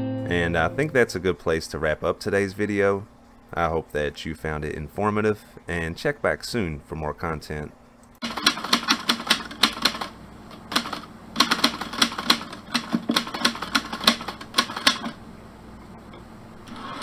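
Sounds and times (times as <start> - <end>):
typewriter keys clacking: 8.2 - 10.1, 10.8 - 15.2.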